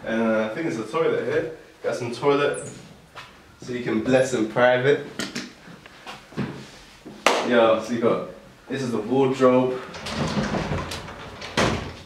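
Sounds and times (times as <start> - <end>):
sliding door rolling on track: 9.8 - 12.0.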